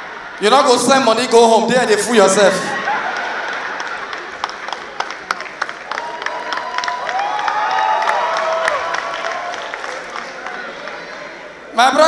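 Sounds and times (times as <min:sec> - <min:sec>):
cheering and held calls: 0:00.0 - 0:12.0
audience clapping: 0:02.8 - 0:11.5.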